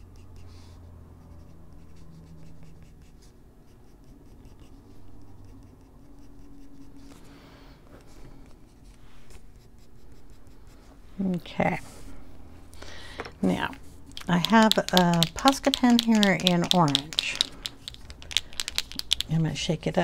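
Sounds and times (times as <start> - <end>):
pencil scratching on paper: 0.0 - 7.2, 8.7 - 11.3, 14.2 - 20.0.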